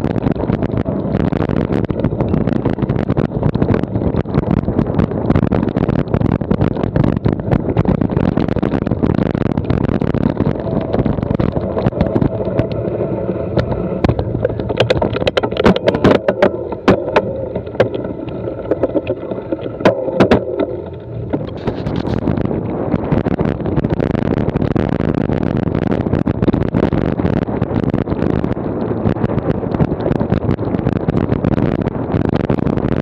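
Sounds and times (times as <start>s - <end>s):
bike rattling: 0.0s - 32.8s
steady whirring tone: 0.0s - 33.0s
wind on microphone: 0.0s - 33.0s
sharp knocks over bumps: 13.6s - 22.2s.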